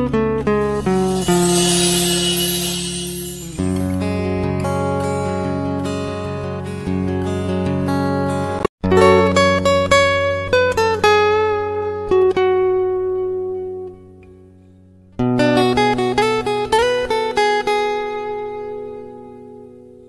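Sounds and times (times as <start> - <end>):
guitar picking a melody: 0.0 - 20.0.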